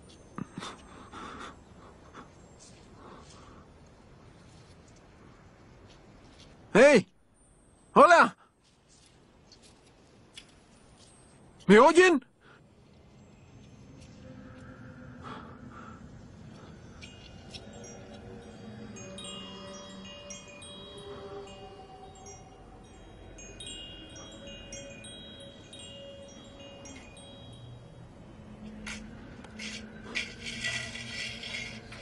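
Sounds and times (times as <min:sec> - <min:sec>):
wind chime tinkling: 0:08.9 - 0:12.3, 0:16.5 - 0:32.0
scraping and clatter: 0:28.8 - 0:32.0.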